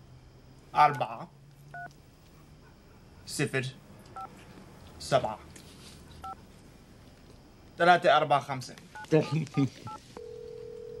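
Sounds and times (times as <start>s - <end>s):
steady low telephone tone: 9.0s - 11.0s
touch-tone phone beeps: 9.0s - 11.0s.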